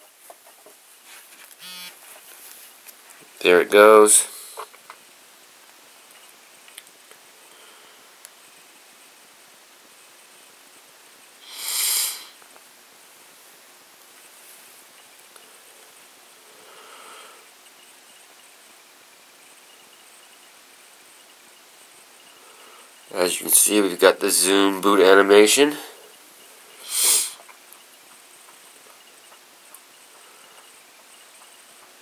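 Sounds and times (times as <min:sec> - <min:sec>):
room hiss: 0:00.0 - 0:32.0
person sniffing: 0:04.3 - 0:04.7, 0:11.4 - 0:12.4, 0:26.8 - 0:27.4.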